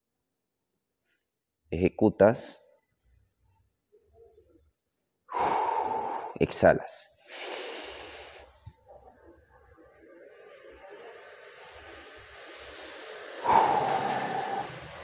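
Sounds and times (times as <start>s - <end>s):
man breathing hard: 5.3s - 6.4s, 7.2s - 8.6s, 13.4s - 15.0s.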